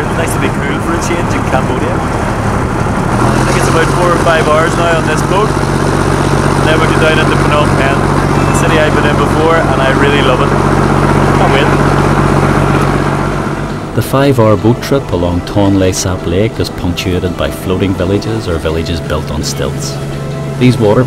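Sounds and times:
voices talking: 0.0s - 2.4s, 3.3s - 13.1s, 13.9s - 21.0s
boat engine droning: 0.0s - 21.0s.

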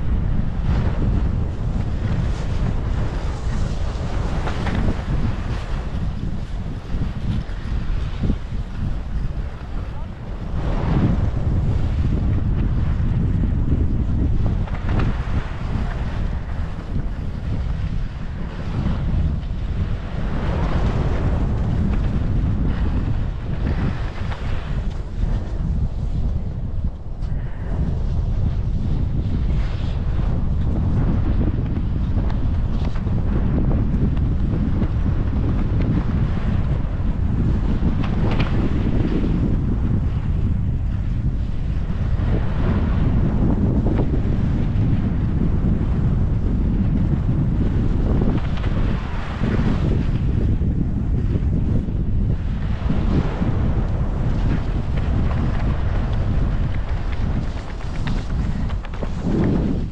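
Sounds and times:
wind buffeting microphone: 0.0s - 59.9s
skis sliding on snow: 0.2s - 26.4s, 27.2s - 46.3s, 47.2s - 51.9s, 52.6s - 59.9s.

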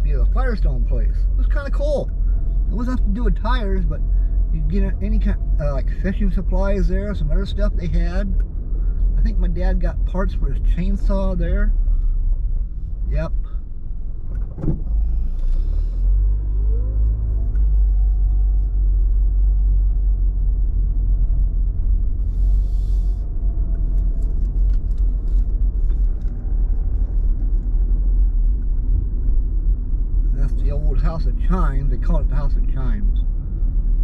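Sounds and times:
car engine accelerating: 0.0s - 34.0s
road rumble: 0.0s - 34.0s.

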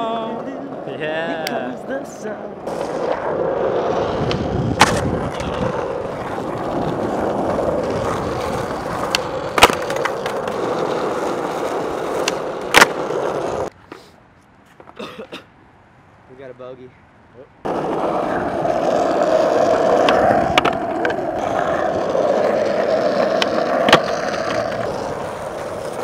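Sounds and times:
skateboard wheels rolling on asphalt: 0.0s - 14.0s, 17.6s - 26.0s
skateboard clacking: 2.6s - 13.7s, 17.6s - 26.0s.

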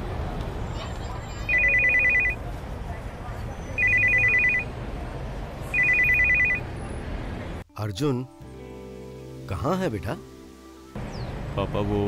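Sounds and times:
low street rumble: 0.0s - 7.7s
mobile phone ringing: 1.5s - 2.4s, 3.8s - 4.7s, 5.7s - 6.6s.

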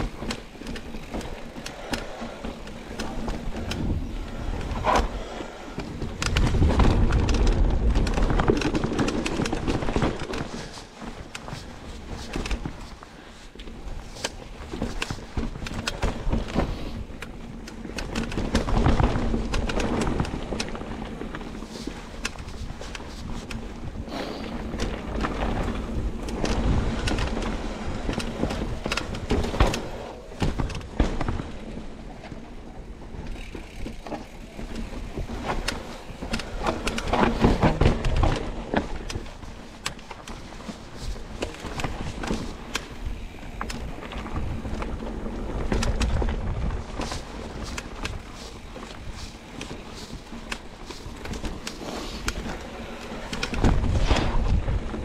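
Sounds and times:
bike rattling and knocking: 0.0s - 55.0s
bike tyres rolling on dirt: 0.0s - 55.0s.

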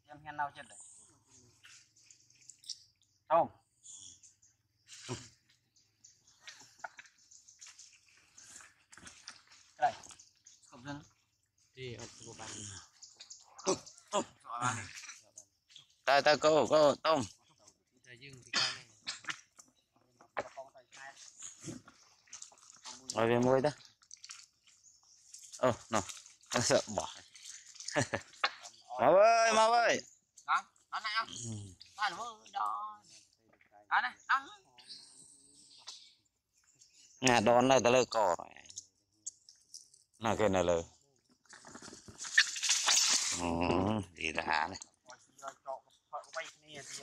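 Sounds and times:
man calling out: 29.0s - 30.0s.

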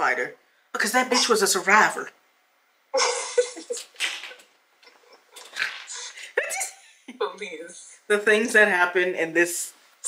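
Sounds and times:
woman's wheezing laughter: 3.0s - 3.8s.

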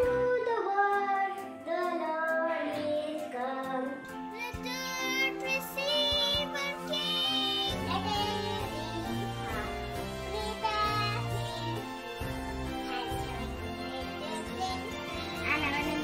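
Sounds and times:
young children singing a carol: 0.0s - 12.3s
background music: 0.0s - 16.0s.

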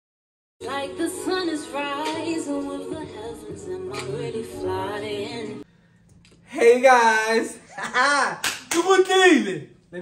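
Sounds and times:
sharp hand claps: 8.4s - 9.0s.

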